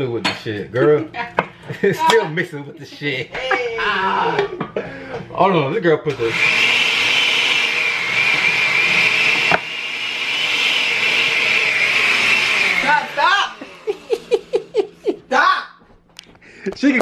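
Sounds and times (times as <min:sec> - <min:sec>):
blender motor whine: 0:06.1 - 0:15.0.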